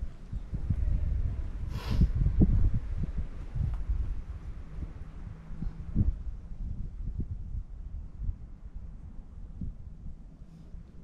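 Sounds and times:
wind rumble on microphone: 0:00.0 - 0:11.0
brief hiss: 0:01.7 - 0:02.1.

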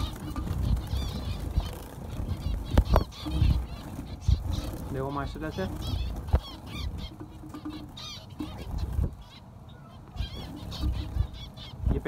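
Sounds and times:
finches calling: 0:00.0 - 0:12.0.

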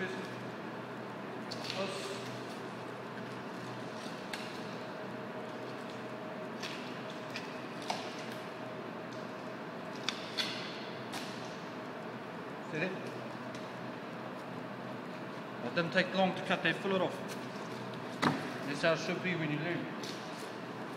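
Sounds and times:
room hum: 0:00.0 - 0:20.9.

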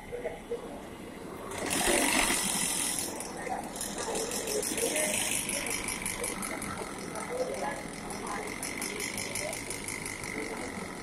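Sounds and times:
machine hissing and ticking: 0:01.5 - 0:11.0.

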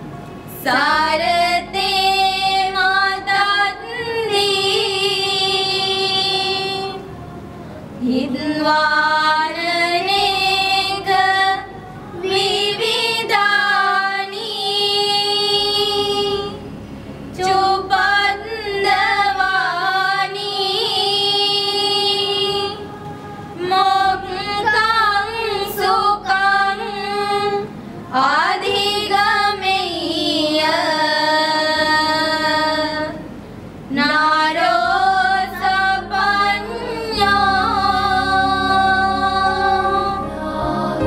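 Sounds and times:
girls singing together: 0:00.5 - 0:41.0.

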